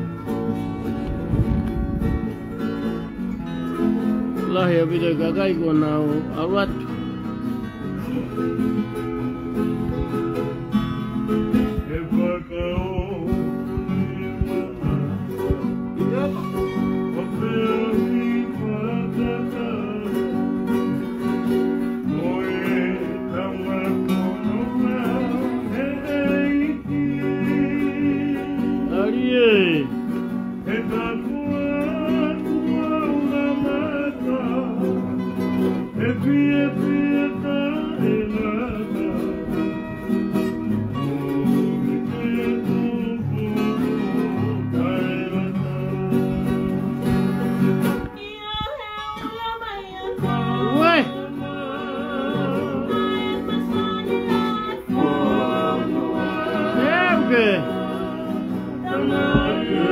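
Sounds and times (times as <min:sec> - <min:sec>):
acoustic guitar strumming: 0:00.0 - 0:59.9
person singing: 0:11.5 - 0:20.7, 0:22.0 - 0:30.0, 0:30.6 - 0:47.4, 0:48.0 - 0:59.9.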